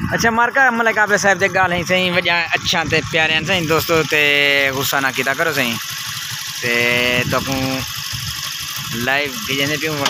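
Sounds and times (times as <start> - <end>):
wind rumble on microphone: 0.0 - 0.4, 1.3 - 4.0, 6.8 - 9.2
man speaking: 0.0 - 5.8, 6.6 - 7.9, 8.9 - 10.0
motorcycle engine running: 0.0 - 10.0.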